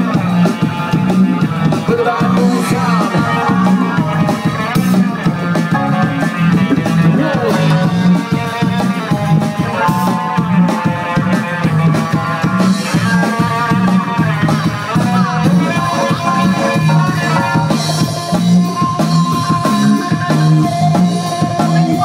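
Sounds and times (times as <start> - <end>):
drum kit beat: 0.0 - 22.0
electric guitar lines: 0.0 - 22.0
low bass line: 0.0 - 22.0.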